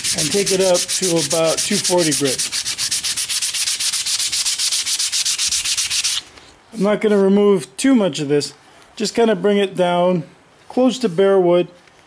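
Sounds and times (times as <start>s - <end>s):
sandpaper rubbing on wood: 0.0s - 6.2s.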